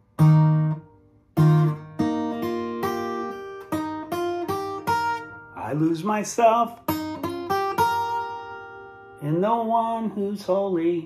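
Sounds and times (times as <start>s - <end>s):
fingerstyle acoustic guitar: 0.0s - 11.0s.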